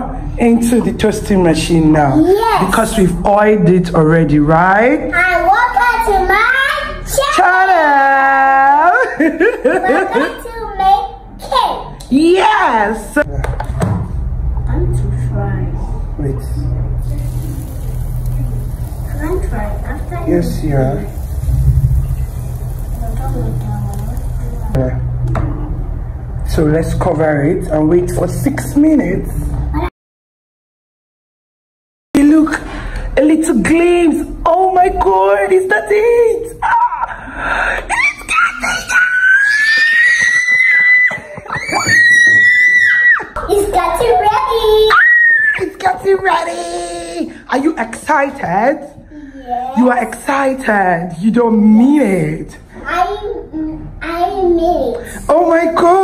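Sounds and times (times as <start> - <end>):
low rumble: 14.2 - 26.8
girl screaming excitedly: 37.9 - 43.3, 44.9 - 45.7.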